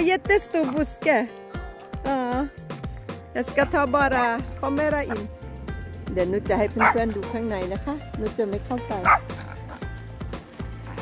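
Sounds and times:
background music: 0.0 - 11.0
dog barking: 6.8 - 7.0, 9.0 - 9.7.

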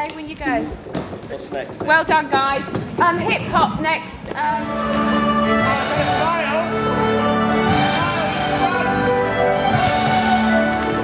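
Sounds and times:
people calling out and talking: 0.0 - 11.0.

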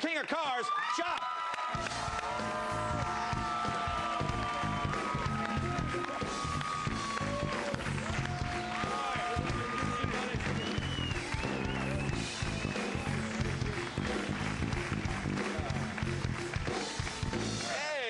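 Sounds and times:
band playing upbeat music: 1.8 - 18.0.

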